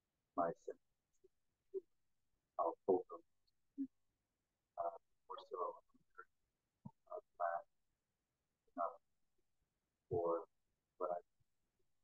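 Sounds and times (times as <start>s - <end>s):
person murmuring over video call: 0.4s - 0.7s, 2.6s - 3.2s, 4.8s - 6.2s, 6.9s - 7.6s, 8.8s - 9.0s, 10.1s - 10.4s.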